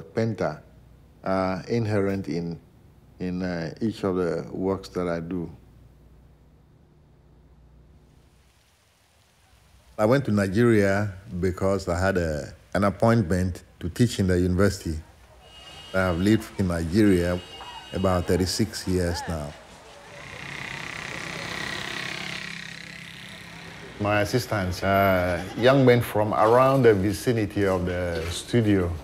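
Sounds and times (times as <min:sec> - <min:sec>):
faint background hiss: 0:00.0 - 0:18.9
traffic: 0:13.6 - 0:29.0
crowd voices: 0:15.0 - 0:29.0
vehicle passing: 0:15.4 - 0:28.5.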